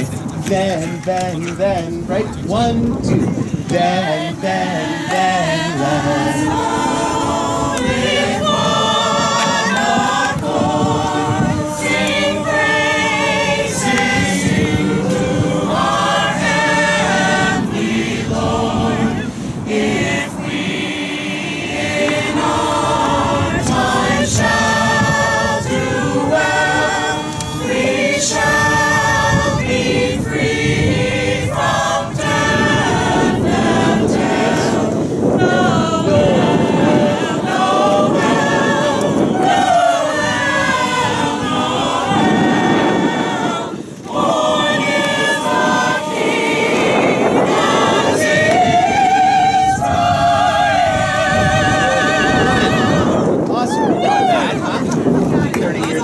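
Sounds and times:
group singing a carol in parts: 0.0 - 56.0.

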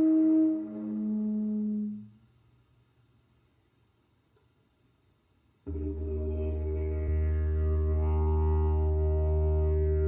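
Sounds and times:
didgeridoo drone: 5.7 - 10.0.

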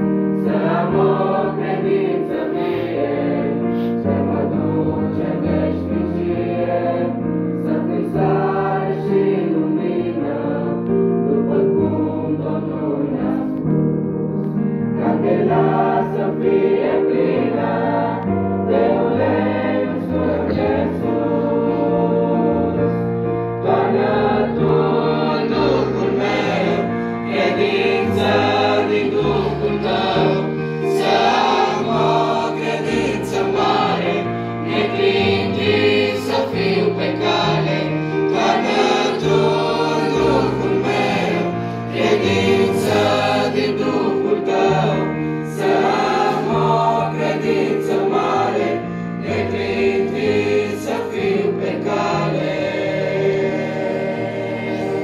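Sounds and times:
youth choir singing a hymn: 0.0 - 55.0.

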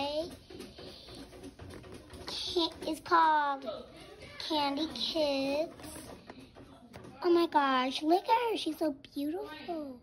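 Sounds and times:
child speaking: 0.0 - 0.4, 2.3 - 6.2, 7.2 - 10.0.

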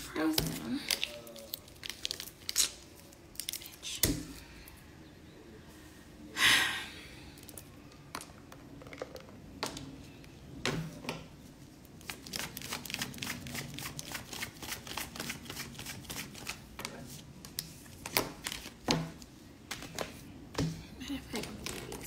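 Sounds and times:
plastic water bottle crinkling: 0.4 - 3.6.

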